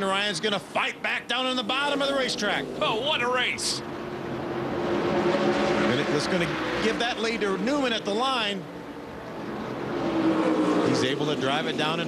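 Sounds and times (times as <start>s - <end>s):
race car engines at speed: 0.0s - 12.0s.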